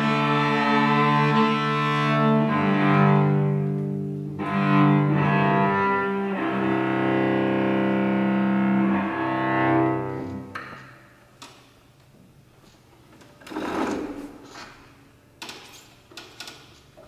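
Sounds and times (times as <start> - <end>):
bowed cello notes: 0.0 - 11.2.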